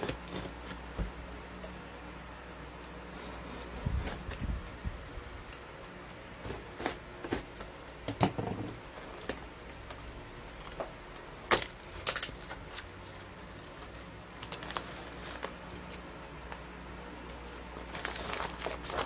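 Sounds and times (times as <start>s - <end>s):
cardboard rustling and crackling: 0.0s - 2.1s, 2.7s - 19.0s.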